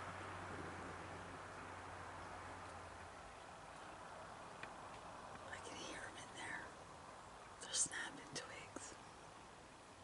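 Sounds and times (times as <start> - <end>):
person whispering: 5.5 - 6.7, 7.6 - 8.9.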